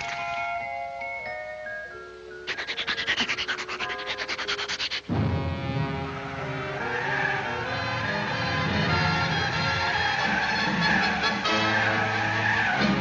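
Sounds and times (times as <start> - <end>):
light music: 0.0 - 13.0
cartoon scrubbing rasp: 2.5 - 5.1
low orchestral music: 5.1 - 13.0.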